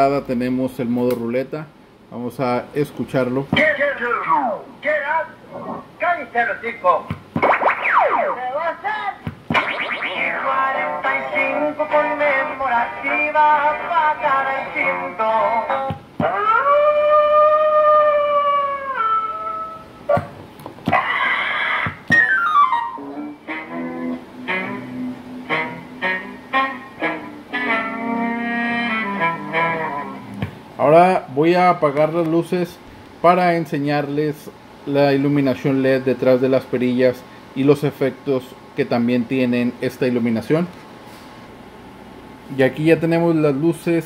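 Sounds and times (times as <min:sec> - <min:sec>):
short electronic melodies: 0:09.5 - 0:11.4
long held electronic tone: 0:09.5 - 0:11.8, 0:16.3 - 0:20.1
whistle-like pitch sweeps: 0:09.6 - 0:10.6, 0:22.1 - 0:23.1.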